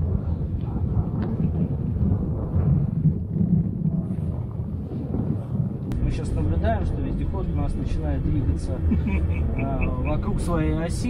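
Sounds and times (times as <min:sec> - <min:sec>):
electric vehicle low rumble: 0:00.0 - 0:11.0.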